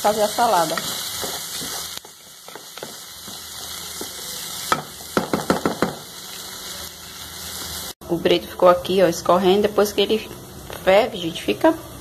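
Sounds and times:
food sizzling in oil: 0:00.0 - 0:08.0
wooden spoon knocking on pot: 0:04.0 - 0:06.1.

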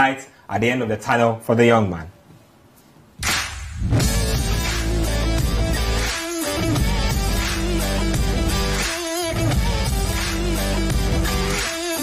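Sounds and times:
music: 0:03.2 - 0:12.0.

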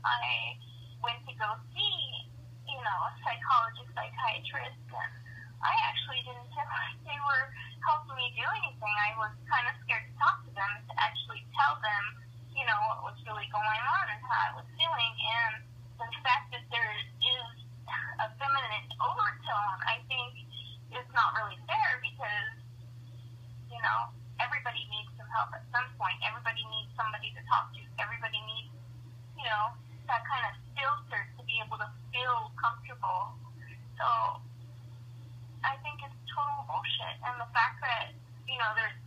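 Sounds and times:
person talking over telephone: 0:00.0 - 0:22.6, 0:23.7 - 0:28.6, 0:29.4 - 0:34.4, 0:35.6 - 0:39.0
steady low hum: 0:00.0 - 0:39.0.

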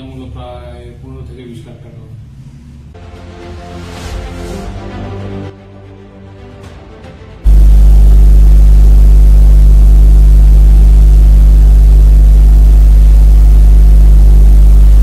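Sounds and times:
loud low hum with hiss: 0:00.0 - 0:03.0, 0:07.5 - 0:15.0.

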